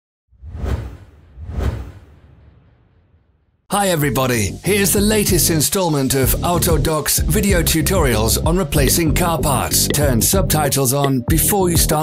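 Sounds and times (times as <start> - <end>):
whoosh sound effects: 0.3 - 3.6.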